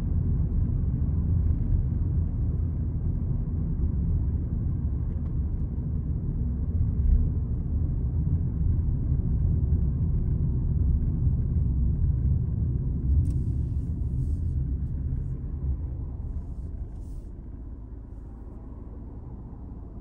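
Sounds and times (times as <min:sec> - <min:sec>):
road and tyre rumble: 0:00.0 - 0:20.0.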